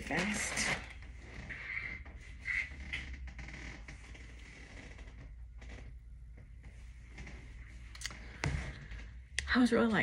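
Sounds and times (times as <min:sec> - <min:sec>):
soft squeaks: 0:00.2 - 0:05.9.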